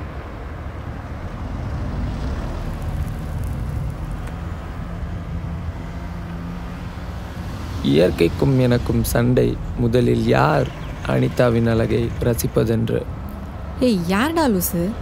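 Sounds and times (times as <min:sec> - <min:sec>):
faint engine hum: 0:00.0 - 0:15.0
road traffic rumble: 0:00.0 - 0:15.0.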